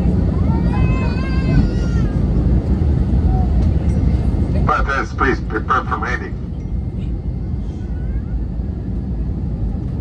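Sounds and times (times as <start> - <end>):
airliner cabin rumble: 0.0 - 10.0.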